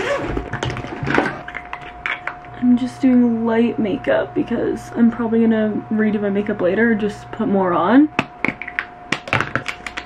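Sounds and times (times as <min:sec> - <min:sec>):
faint steady hum: 0:00.0 - 0:10.0
makeup products clicking and tapping: 0:08.2 - 0:10.0.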